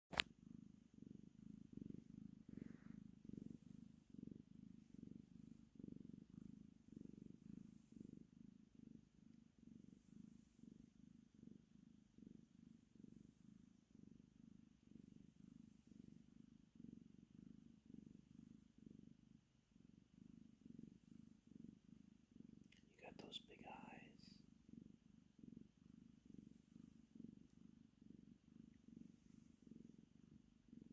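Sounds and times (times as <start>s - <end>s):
cat purring: 0.1s - 30.9s.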